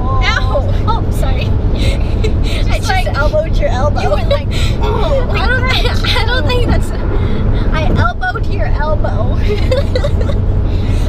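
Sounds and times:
car cabin road rumble: 0:00.0 - 0:11.0
women laughing and chattering: 0:00.2 - 0:07.8, 0:09.2 - 0:11.0.

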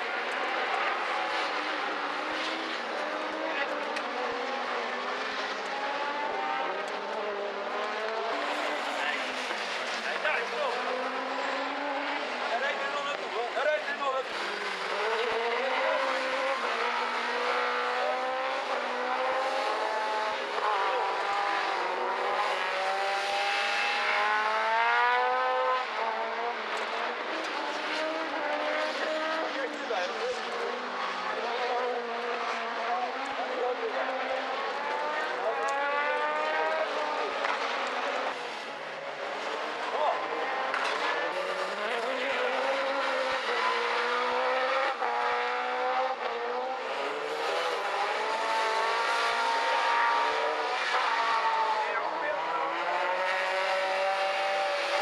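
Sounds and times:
racing engines revving: 0:00.0 - 0:55.0.

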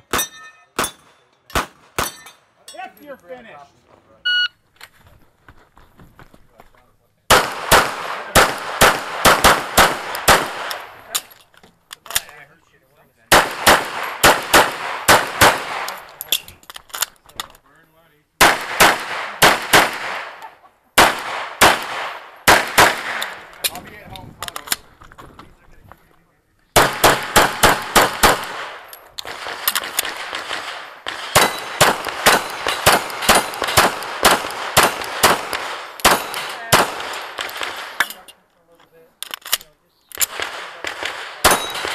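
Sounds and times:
pistol shots: 0:07.3 - 0:11.0, 0:13.3 - 0:16.2, 0:18.4 - 0:23.5, 0:26.8 - 0:38.0, 0:40.2 - 0:41.9.

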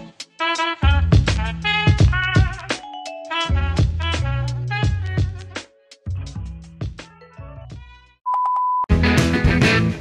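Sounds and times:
loud music: 0:00.0 - 0:07.1, 0:08.9 - 0:10.0
background music: 0:00.0 - 0:08.2, 0:08.9 - 0:10.0.

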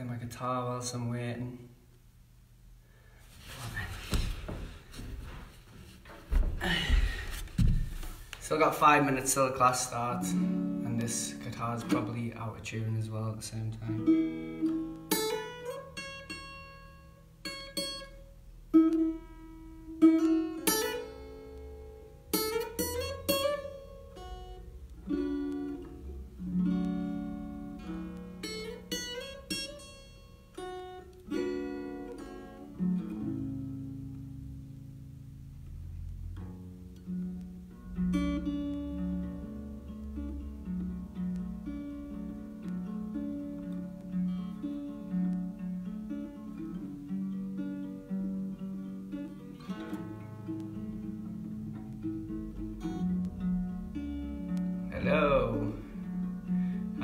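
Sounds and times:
acoustic guitar plucked: 0:03.4 - 0:57.0.

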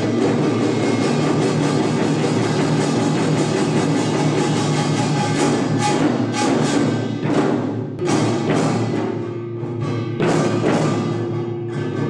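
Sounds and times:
hourglass drums struck with sticks: 0:00.0 - 0:09.3
barrel drum: 0:00.0 - 0:12.0
gongs: 0:00.0 - 0:12.0.

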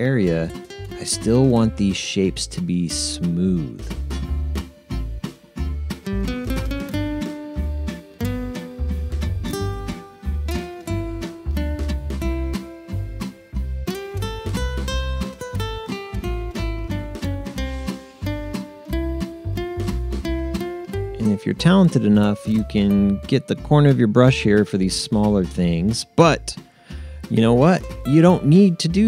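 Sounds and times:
plucked acoustic guitar: 0:00.0 - 0:29.0
repeating bass line: 0:03.6 - 0:26.6.

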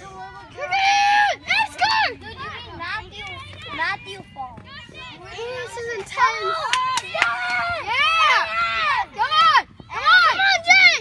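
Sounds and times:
children shouting excitedly: 0:00.0 - 0:11.0.

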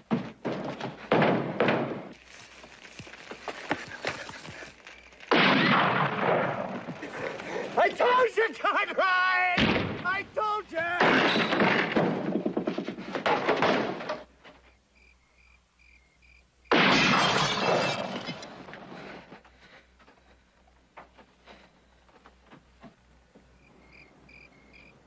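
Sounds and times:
crickets chirping: 0:02.2 - 0:05.3, 0:14.6 - 0:16.7, 0:23.1 - 0:25.0
crashing commotion: 0:10.9 - 0:14.3, 0:16.7 - 0:18.8
glass breaking crash: 0:11.0 - 0:12.2, 0:16.7 - 0:18.5.

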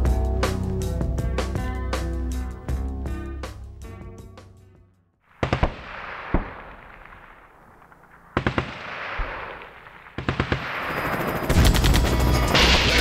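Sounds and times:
gunfire bursts with echo: 0:05.3 - 0:13.0.

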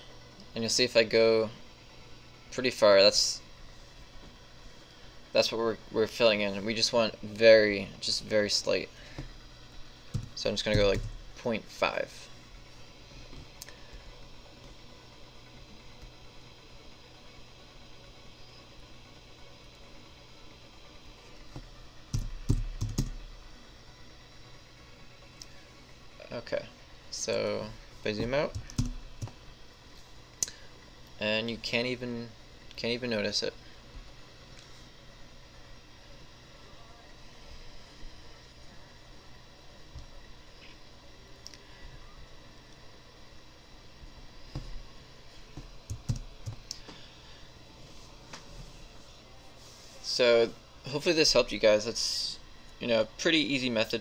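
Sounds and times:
faint low hum: 0:00.0 - 0:54.0
room hiss: 0:00.0 - 0:54.0
keyboard and mouse clicks: 0:22.1 - 0:23.2, 0:28.5 - 0:29.4, 0:45.8 - 0:46.8.

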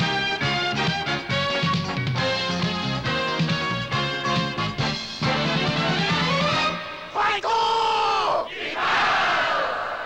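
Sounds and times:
men shouting a battle cry: 0:07.1 - 0:10.0.

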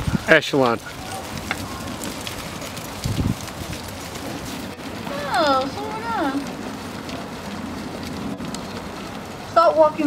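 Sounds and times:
horses walking on sand: 0:00.0 - 0:10.0.

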